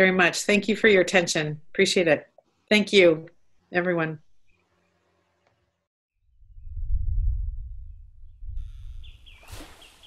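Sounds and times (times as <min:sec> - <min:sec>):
low rumbling whoosh: 0:06.3 - 0:09.6
short bird chirps: 0:08.6 - 0:10.0
soft nature hiss: 0:08.6 - 0:10.0.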